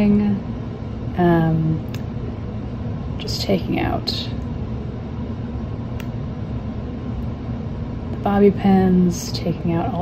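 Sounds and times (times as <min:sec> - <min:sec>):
faint steady hum: 0:00.0 - 0:10.0
low rumbling background noise: 0:00.0 - 0:10.0.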